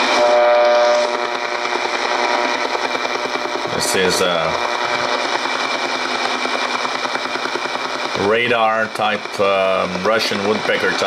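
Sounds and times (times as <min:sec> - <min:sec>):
fast radio pulses: 0:00.0 - 0:11.0
radio static: 0:00.0 - 0:11.0.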